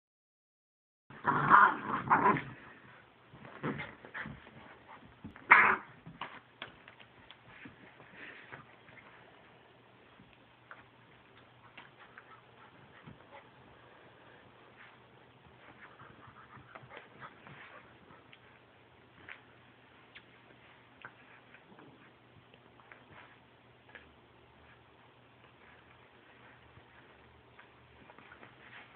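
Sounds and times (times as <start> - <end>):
puppies play-fighting: 14.8 - 28.9.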